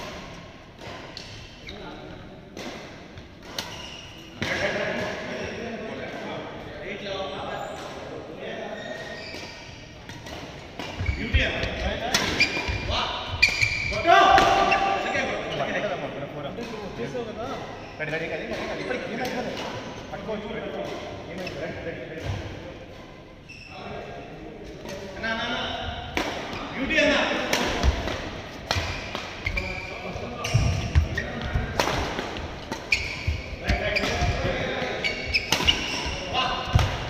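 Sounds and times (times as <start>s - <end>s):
shoes squeaking on floor: 3.5s - 4.4s, 5.2s - 5.8s, 8.6s - 10.0s, 10.8s - 15.8s, 17.5s - 19.1s, 23.3s - 24.0s, 28.8s - 37.0s
racket hitting shuttlecock: 27.4s - 29.6s, 30.4s - 37.0s.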